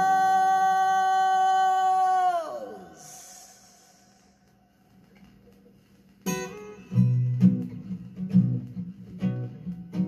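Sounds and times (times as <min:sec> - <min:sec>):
man singing a long note: 0:00.0 - 0:04.2.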